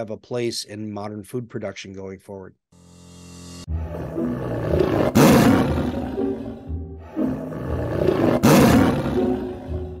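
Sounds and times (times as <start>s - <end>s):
background music: 2.8s - 10.0s
tiger roar: 3.8s - 10.0s.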